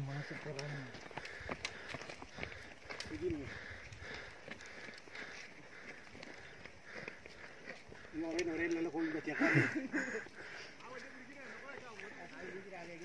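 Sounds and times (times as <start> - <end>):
footsteps crunching on gravel: 0.0 - 13.0.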